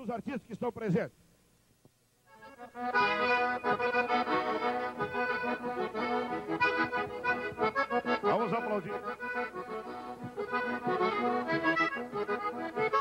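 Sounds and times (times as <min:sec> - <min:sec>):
piano accordion playing: 0:02.3 - 0:13.0.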